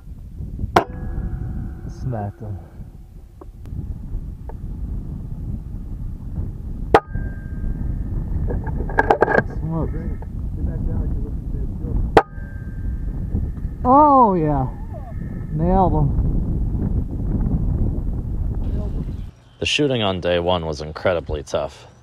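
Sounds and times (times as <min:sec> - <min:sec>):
wind rumble on microphone: 0:00.0 - 0:19.3.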